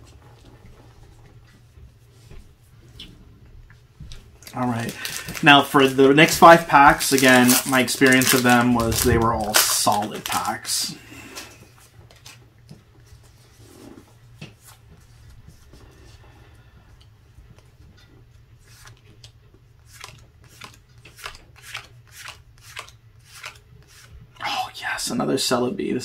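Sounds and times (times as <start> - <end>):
steady low hum: 0.0 - 21.6
trading cards flicked by hand: 18.7 - 24.0.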